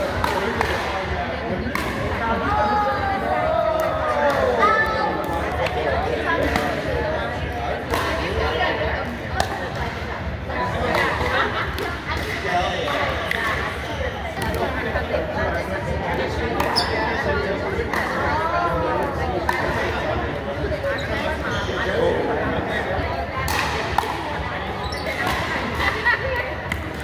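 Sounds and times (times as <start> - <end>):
voices chattering and calling: 0.0 - 27.0.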